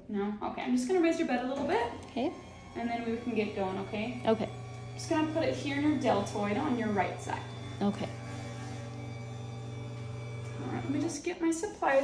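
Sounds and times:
electric bed motor humming: 0.5 - 12.0.

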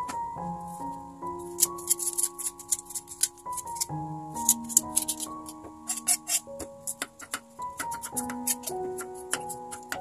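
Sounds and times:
background music with held notes: 0.0 - 10.0
knife cutting gourd rind: 1.4 - 10.0
knife tapping wooden chopping board: 5.9 - 10.0.

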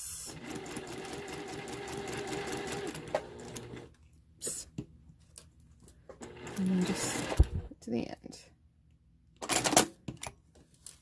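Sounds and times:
sewing machine stitching: 0.3 - 3.9, 6.2 - 7.7.

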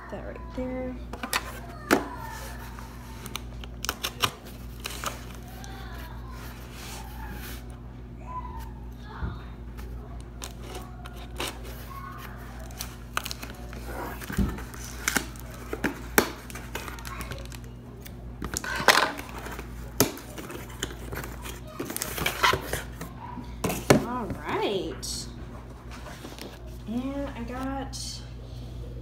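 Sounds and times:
packing tape tearing: 2.2 - 7.0, 10.4 - 23.1.

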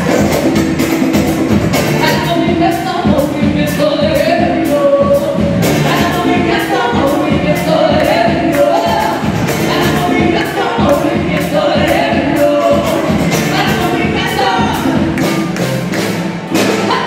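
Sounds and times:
acoustic guitar: 0.0 - 17.0
congas: 0.0 - 17.0
drum kit beat: 0.0 - 17.0
women singing together: 2.0 - 15.2, 16.8 - 17.0.

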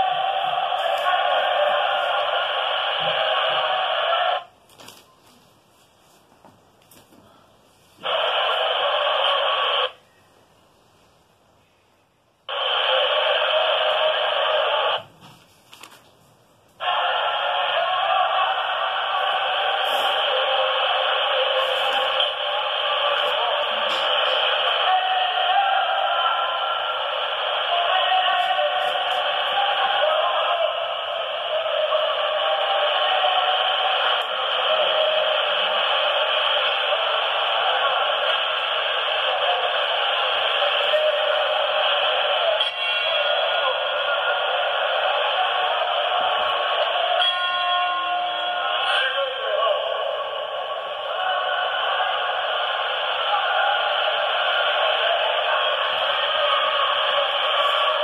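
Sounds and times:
tinny videotape audio playback: 0.0 - 58.0.

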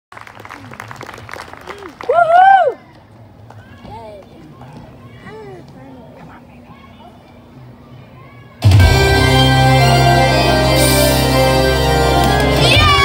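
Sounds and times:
loud whoop: 1.8 - 2.8.

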